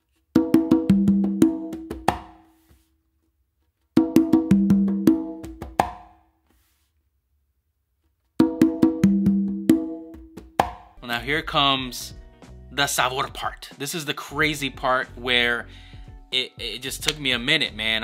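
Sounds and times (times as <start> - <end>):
conga drums played by hand: 0.4 - 2.4, 4.0 - 6.2, 8.4 - 11.0.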